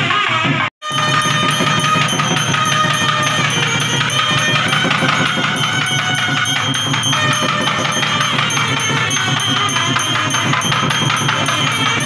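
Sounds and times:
fast drumming: 0:00.8 - 0:12.0
hand bell ringing: 0:00.8 - 0:12.0
jingling percussion: 0:00.8 - 0:12.0.

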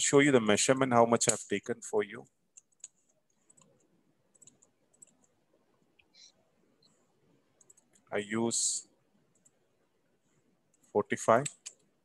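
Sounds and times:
computer mouse clicks: 0:02.5 - 0:05.4, 0:06.0 - 0:08.1, 0:09.3 - 0:09.6, 0:10.7 - 0:11.9.

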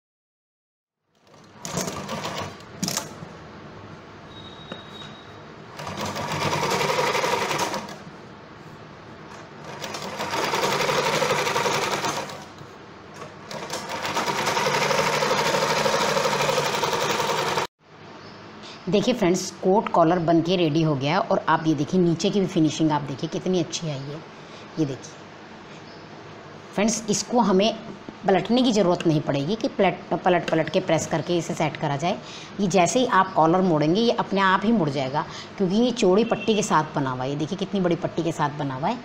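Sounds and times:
sewing machine stitching: 0:01.2 - 0:03.1, 0:05.8 - 0:08.0, 0:09.3 - 0:12.5, 0:13.2 - 0:17.7.

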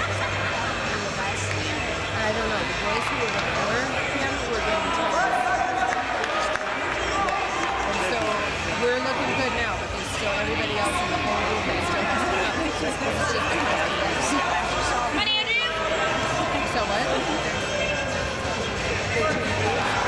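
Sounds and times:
echoing chatter of people: 0:00.0 - 0:20.0.

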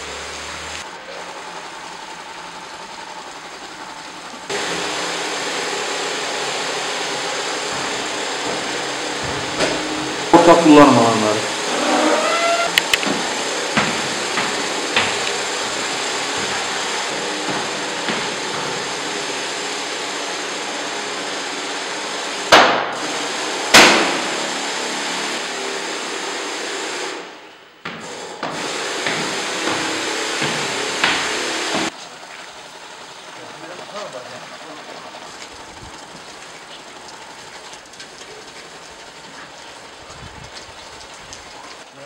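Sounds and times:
sprayer misting hiss: 0:00.0 - 0:22.4, 0:28.1 - 0:32.0
sharp knocks: 0:12.9 - 0:15.4, 0:27.8 - 0:31.9.

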